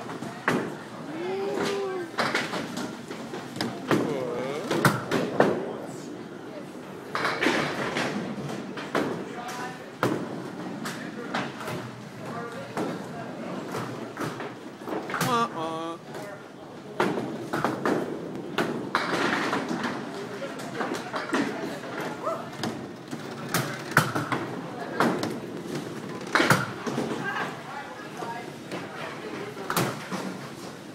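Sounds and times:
people chattering and calling: 0.0s - 7.4s, 10.8s - 17.0s
bowling balls on wooden lanes: 0.0s - 30.9s.

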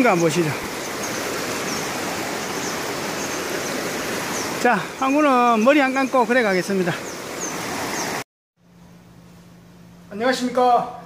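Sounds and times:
stream rushing over rocks: 0.0s - 8.2s.

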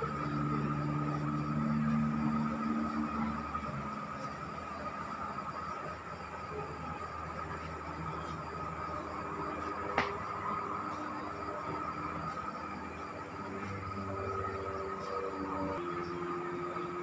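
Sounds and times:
city traffic hum: 0.0s - 17.0s
vehicle engine droning: 0.0s - 17.0s.

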